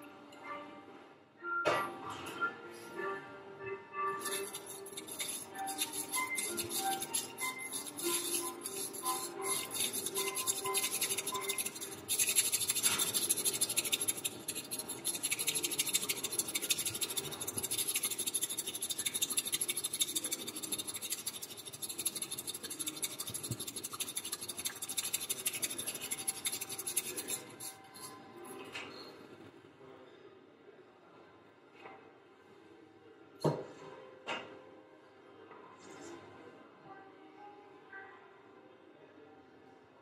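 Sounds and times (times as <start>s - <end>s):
soft background music: 0.0s - 18.5s
whisk brushing in tea bowl: 4.1s - 28.6s.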